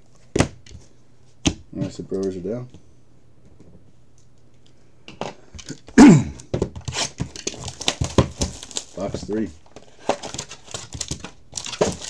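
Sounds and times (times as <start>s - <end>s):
man clearing his throat: 6.0s - 6.5s
card packaging crinkling and tearing: 6.8s - 12.0s.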